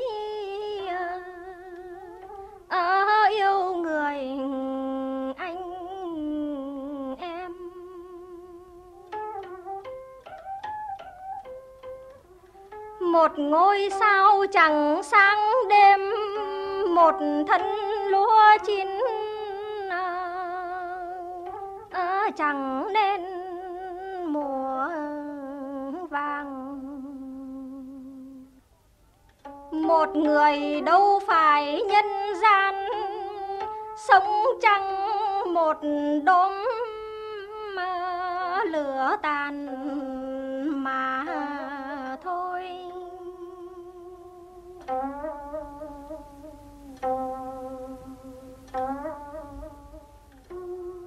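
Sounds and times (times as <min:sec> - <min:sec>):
plucked string instrument notes: 0:00.0 - 0:51.0.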